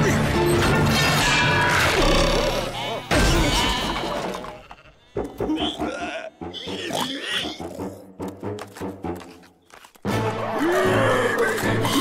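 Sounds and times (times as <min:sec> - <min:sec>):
background music: 0:00.0 - 0:03.2, 0:04.5 - 0:12.0
cartoon pigs grunting and squealing: 0:01.2 - 0:08.1, 0:10.2 - 0:12.0.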